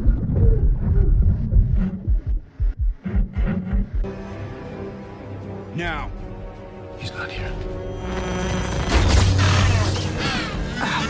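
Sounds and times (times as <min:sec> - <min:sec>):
low rumble: 0:00.0 - 0:04.1
buzzing hum: 0:07.9 - 0:10.0.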